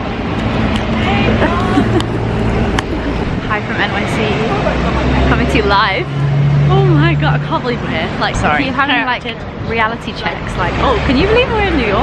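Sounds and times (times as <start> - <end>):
indistinct chatter: 0.0 - 12.0
traffic engine rumble: 0.0 - 12.0.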